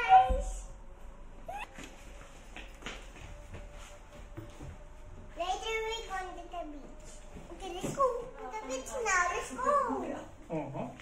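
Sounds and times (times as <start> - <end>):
soft footsteps on carpet: 1.7 - 5.4.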